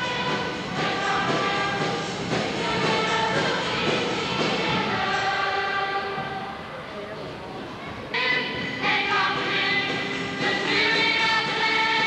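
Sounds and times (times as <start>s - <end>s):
choir holding chord: 0.0s - 6.7s.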